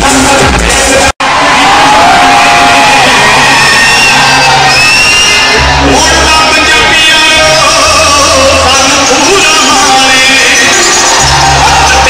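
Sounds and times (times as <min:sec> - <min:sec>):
crowd cheering and shouting: 0:00.0 - 0:12.0
live concert music: 0:00.0 - 0:12.0.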